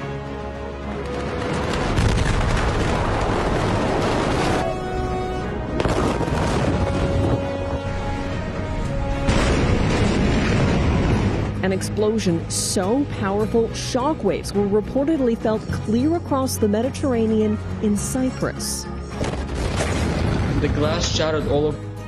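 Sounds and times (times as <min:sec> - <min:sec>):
music: 0:00.0 - 0:22.0
explosion rumble: 0:01.3 - 0:04.9, 0:05.6 - 0:11.6, 0:19.2 - 0:21.2.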